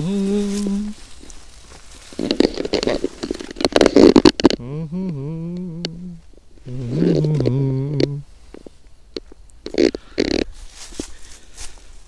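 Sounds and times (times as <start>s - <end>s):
man humming a low note: 0.0s - 1.0s, 4.5s - 8.3s
footsteps in dry leaves: 0.0s - 4.0s, 10.5s - 12.0s.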